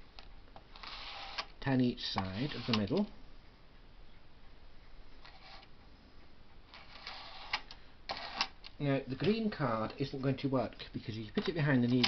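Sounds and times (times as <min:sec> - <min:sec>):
card scraping plastic needles: 0:00.6 - 0:03.1, 0:06.7 - 0:08.8.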